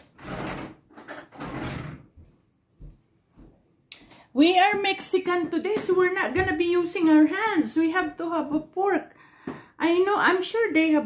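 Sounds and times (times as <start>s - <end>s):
drawer sliding: 0.0s - 2.1s.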